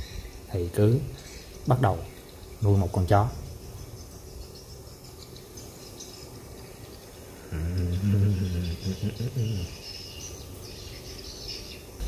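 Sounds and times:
birds chirping: 0:00.0 - 0:12.0
insects: 0:00.0 - 0:12.0
low voice-like hum: 0:07.4 - 0:09.8.

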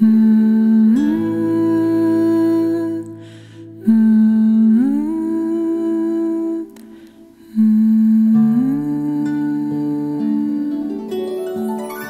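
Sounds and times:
soft breath: 0:03.1 - 0:03.8, 0:06.8 - 0:07.6
person humming lullaby: 0:07.4 - 0:12.0.

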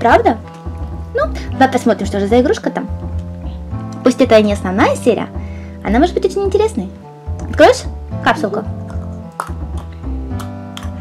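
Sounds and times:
low bass line: 0:00.0 - 0:11.0.

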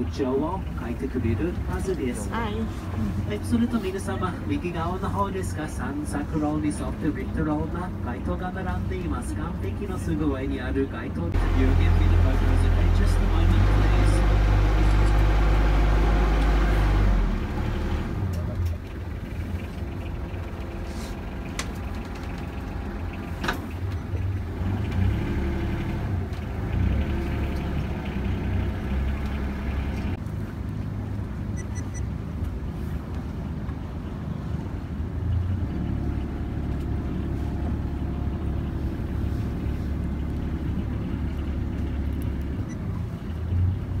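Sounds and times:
boat motor droning: 0:00.0 - 0:44.0.

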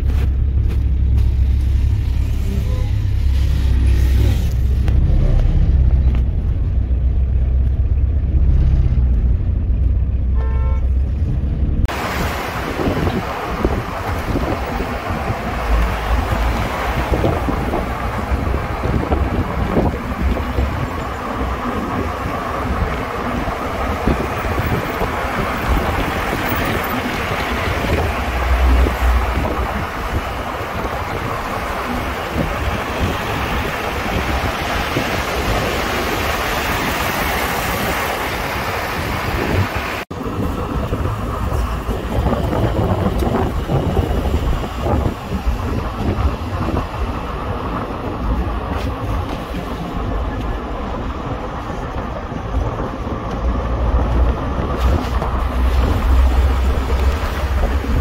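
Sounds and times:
car road and engine noise: 0:00.0 - 0:58.0
street traffic: 0:00.0 - 0:58.0
wind buffeting microphone: 0:11.0 - 0:58.0.

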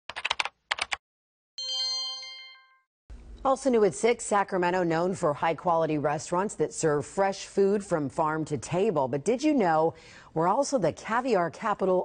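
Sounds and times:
keyboard typing: 0:00.1 - 0:01.0
bright chime: 0:01.6 - 0:02.9.

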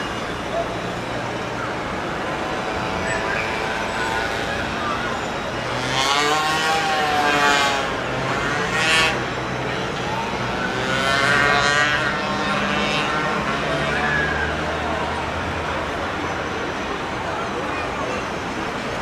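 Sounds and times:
car engines accelerating: 0:00.0 - 0:19.0
steady traffic noise: 0:00.0 - 0:19.0.

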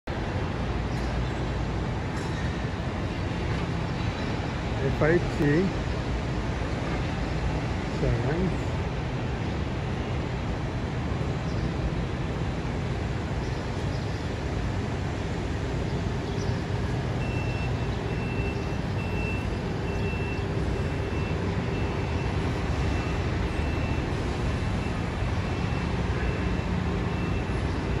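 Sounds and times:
street traffic engine rumble: 0:00.1 - 0:28.0
reversing beeper high beeps: 0:17.2 - 0:24.1.

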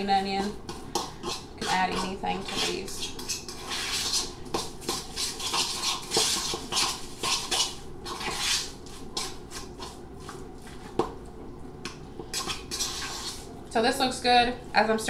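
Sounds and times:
utensil stirring mixture in bowl: 0:00.0 - 0:15.0.

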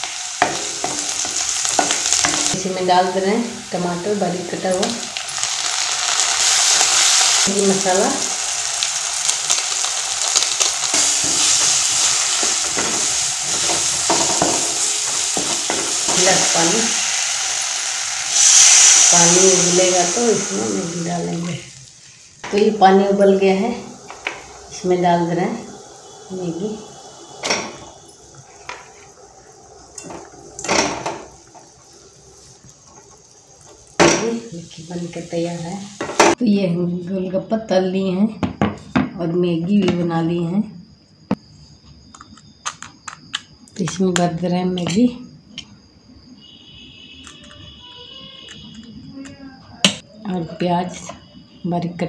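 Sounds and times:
vegetables sizzling in hot oil: 0:00.0 - 0:36.4.

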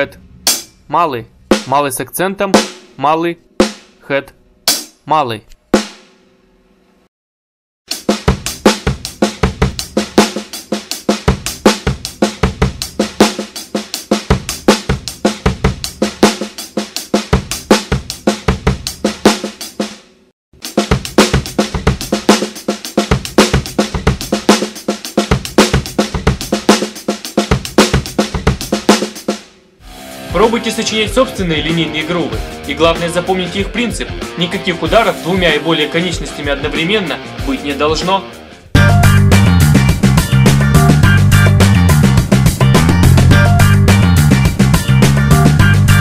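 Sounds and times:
drum kit groove: 0:00.0 - 0:05.0, 0:05.7 - 0:06.2, 0:07.9 - 0:46.0.

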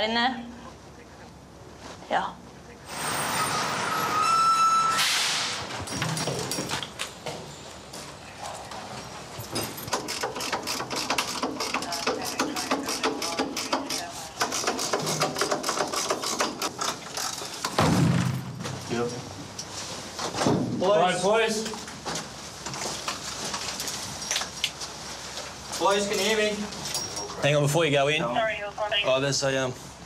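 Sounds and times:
brief whine: 0:02.9 - 0:05.6.

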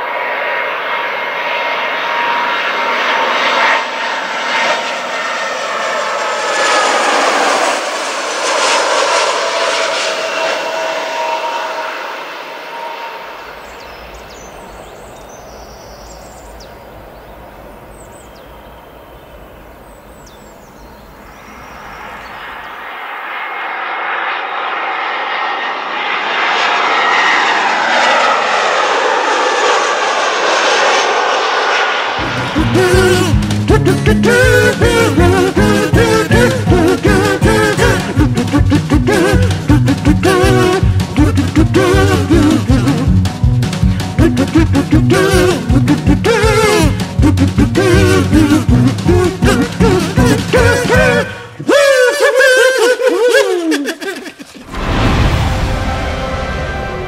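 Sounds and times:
jet airliner passing overhead: 0:00.0 - 0:44.2, 0:44.8 - 0:52.2, 0:54.0 - 0:57.0.

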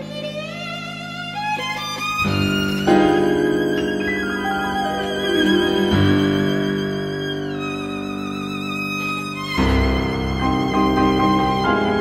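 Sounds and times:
violin melody with vibrato: 0:00.0 - 0:12.0.

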